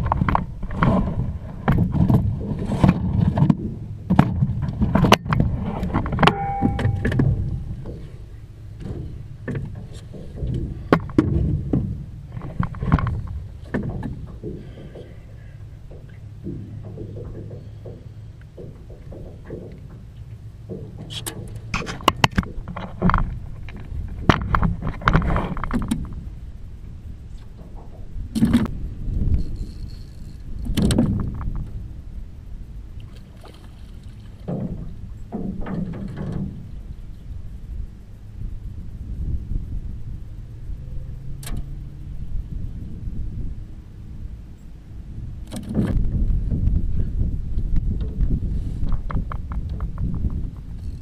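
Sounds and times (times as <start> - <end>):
knocks and clicks in boat: 0.0 - 31.9, 32.9 - 38.2, 41.4 - 41.8, 45.4 - 46.9, 47.5 - 51.0
low steady rumble: 0.0 - 51.0
knocks against boat hull: 15.9 - 20.0.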